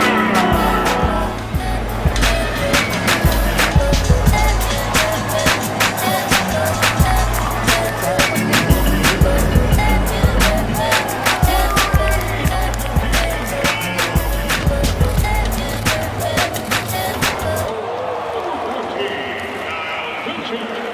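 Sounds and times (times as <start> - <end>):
music with drum beat and heavy bass: 0.0 - 17.7.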